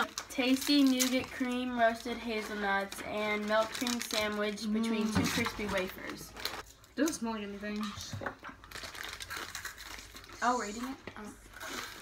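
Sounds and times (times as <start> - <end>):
crunchy wafers being chewed: 8.6 - 10.4.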